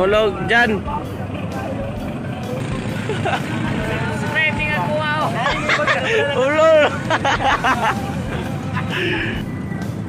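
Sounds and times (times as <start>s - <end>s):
background chatter: 0.0s - 10.0s
music: 0.0s - 10.0s.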